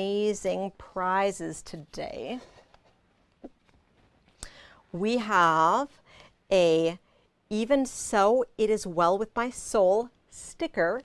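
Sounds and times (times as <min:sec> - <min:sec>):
woman speaking: 0:00.0 - 0:02.6, 0:04.9 - 0:11.0
short breath: 0:04.4 - 0:04.8.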